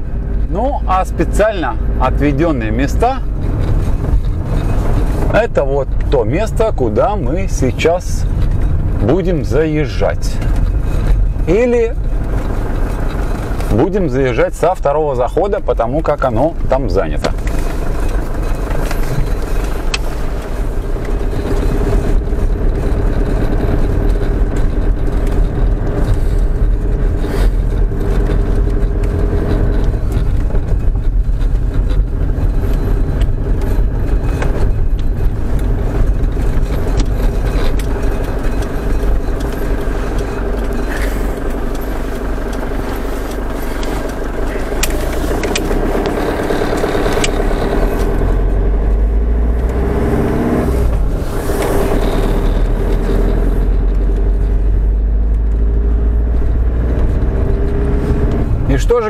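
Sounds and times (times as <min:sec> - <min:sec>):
sharp clicks and rattles: 0:00.0 - 0:59.0
vehicle engine and road noise: 0:00.0 - 0:59.0.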